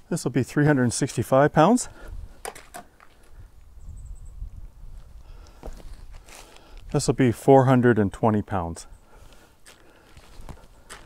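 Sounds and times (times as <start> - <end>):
high bird chirp: 3.8 - 4.5.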